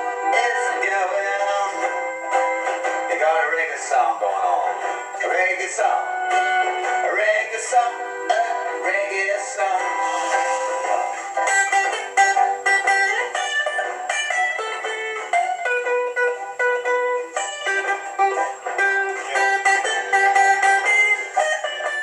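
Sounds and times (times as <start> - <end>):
man singing reggae song: 0.0 - 2.0, 3.0 - 11.3
guitar strumming: 0.0 - 22.0.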